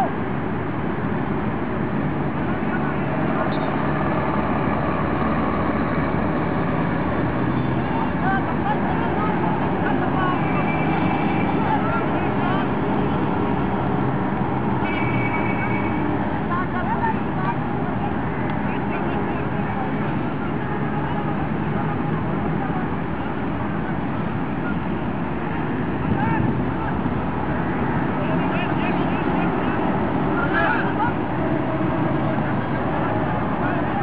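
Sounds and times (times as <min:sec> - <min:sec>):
distant shouting voices: 0:00.0 - 0:00.3, 0:02.4 - 0:34.0
traffic noise: 0:00.0 - 0:34.0.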